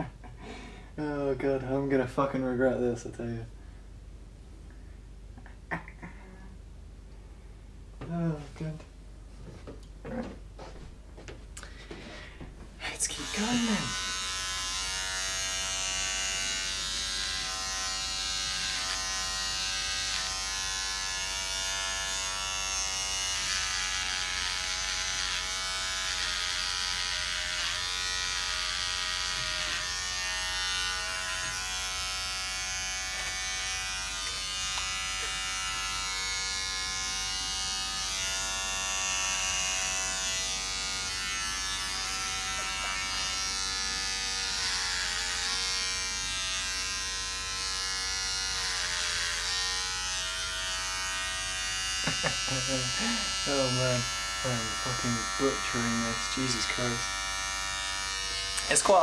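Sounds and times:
beard trimmer buzzing: 12.9s - 59.0s.

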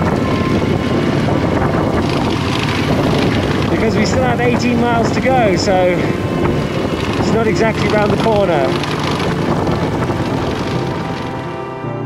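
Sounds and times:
motorcycle engine: 0.0s - 12.0s
road rumble: 0.0s - 12.0s
wind buffeting microphone: 0.0s - 12.0s.

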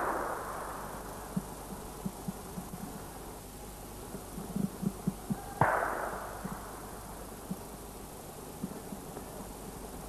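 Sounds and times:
gunshot: 0.0s - 0.9s, 5.6s - 6.6s.

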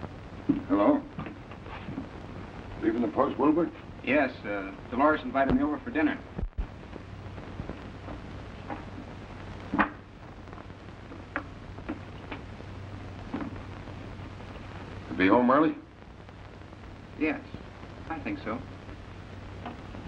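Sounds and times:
film soundtrack hiss and hum: 0.0s - 20.0s.

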